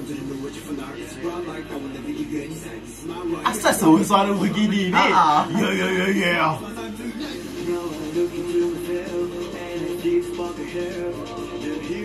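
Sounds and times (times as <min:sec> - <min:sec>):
quiet background music: 0:00.0 - 0:12.0
man speaking: 0:03.4 - 0:06.6.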